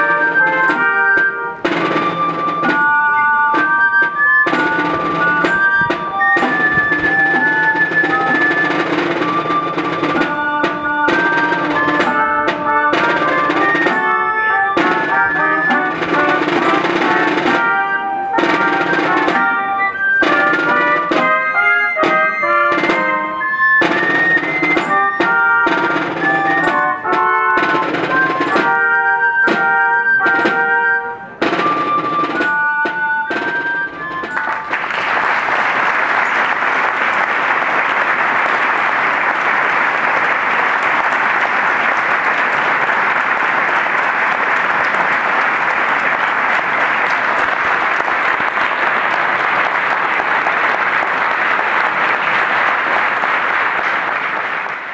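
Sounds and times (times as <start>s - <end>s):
melody over drum beats: 0.0s - 34.9s
crowd applauding: 34.3s - 54.9s.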